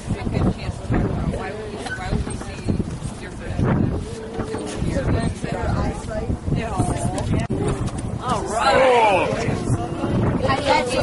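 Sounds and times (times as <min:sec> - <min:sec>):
people talking and exclaiming: 0:00.0 - 0:11.0.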